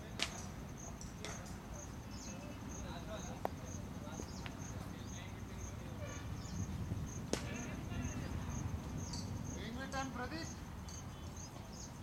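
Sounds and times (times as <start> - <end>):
insects chirping: 0.0 - 12.0.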